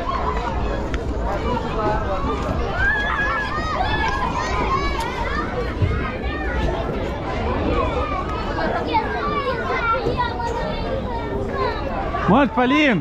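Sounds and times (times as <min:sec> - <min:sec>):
children chattering and calling out: 0:00.0 - 0:13.0.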